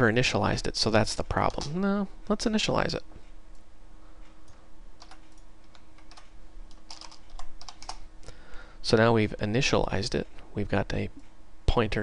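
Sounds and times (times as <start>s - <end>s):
computer keyboard typing: 4.5s - 8.0s.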